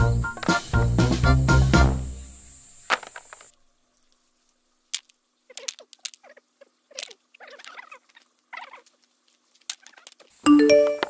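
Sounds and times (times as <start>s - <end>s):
mesh net rustling: 2.9s - 10.4s
walnuts clicking together: 4.9s - 6.3s, 7.0s - 8.2s.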